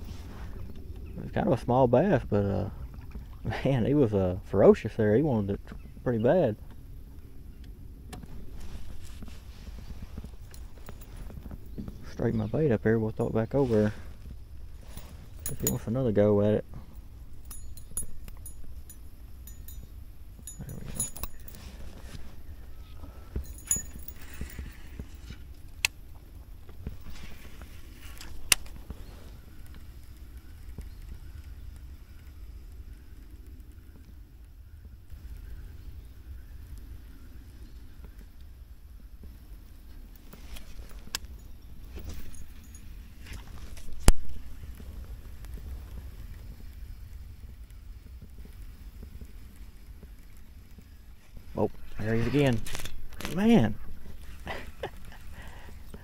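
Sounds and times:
light metallic clinks: 0:10.2 - 0:12.5, 0:14.8 - 0:25.9, 0:40.3 - 0:44.2.

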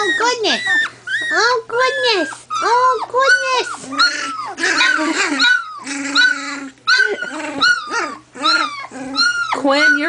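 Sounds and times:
puppy yipping and whimpering: 0:00.0 - 0:10.0.

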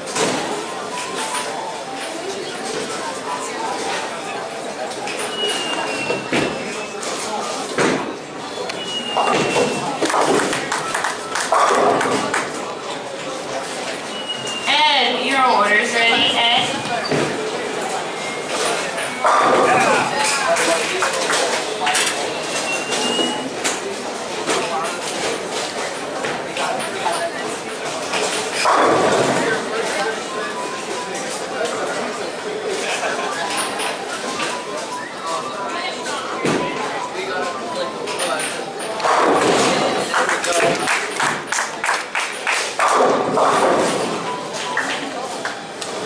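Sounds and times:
lane machinery running: 0:00.0 - 0:46.0
bowling balls rolling: 0:04.9 - 0:14.3
bowling thuds: 0:28.6 - 0:29.8.

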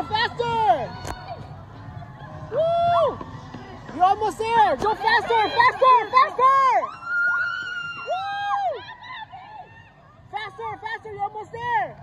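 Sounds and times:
spectators cheering: 0:04.7 - 0:10.8.

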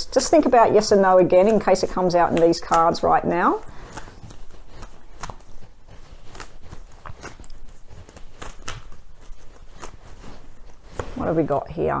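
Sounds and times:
cards being shuffled: 0:01.4 - 0:11.3.

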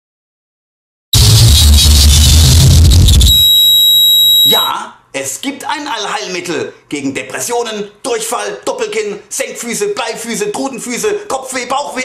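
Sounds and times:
loud noise burst with rumble: 0:01.2 - 0:03.4
high-pitched beep: 0:03.0 - 0:04.7.

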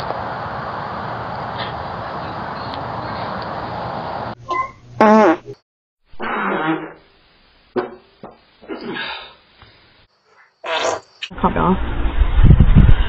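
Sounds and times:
human farts: 0:05.0 - 0:07.1, 0:10.6 - 0:11.1.

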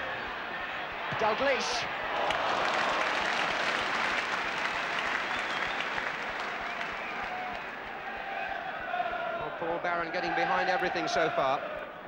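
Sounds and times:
stadium crowd applauding and cheering: 0:00.0 - 0:12.0.

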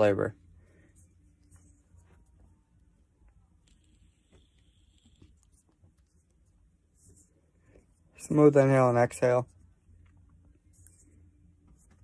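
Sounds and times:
faint vape hiss: 0:00.4 - 0:09.5.

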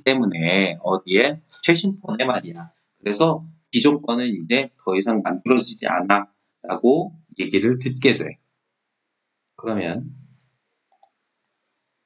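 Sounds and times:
person speaking: 0:00.0 - 0:08.3, 0:09.6 - 0:10.2
computer mouse clicks: 0:10.9 - 0:11.2.

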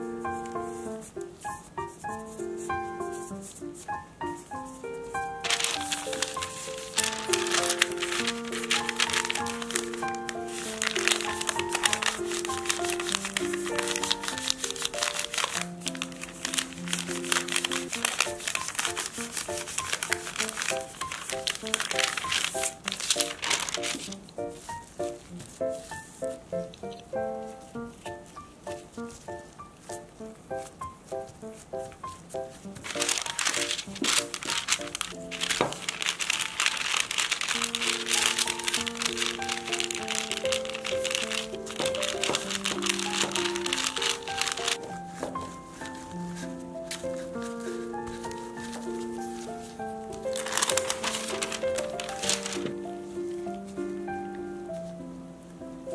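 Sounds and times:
baking paper crinkling: 0:00.0 - 0:54.0
instrumental background music: 0:00.0 - 0:55.9
light background melody: 0:00.0 - 0:55.9.

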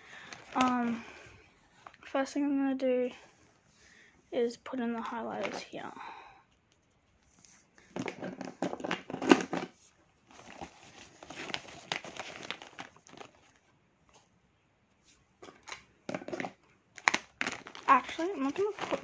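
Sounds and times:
pencil case rustling: 0:07.4 - 0:13.6, 0:15.6 - 0:19.0.

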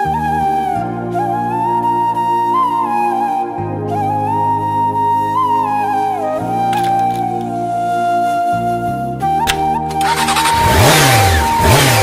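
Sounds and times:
flute music: 0:00.0 - 0:12.0
motorcycle engine revving: 0:09.9 - 0:12.0.

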